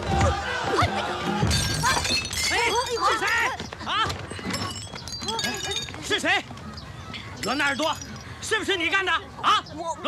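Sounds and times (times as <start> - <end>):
glass shattering: 1.5 - 3.7, 4.3 - 6.2, 7.4 - 8.3.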